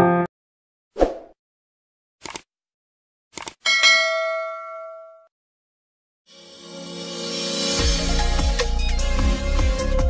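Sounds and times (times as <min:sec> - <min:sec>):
notification bell ding: 0:03.7 - 0:05.3.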